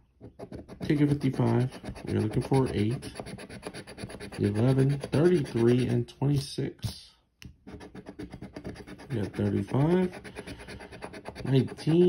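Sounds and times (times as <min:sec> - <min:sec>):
coin scratching lottery ticket: 0:00.3 - 0:06.0, 0:07.7 - 0:12.0.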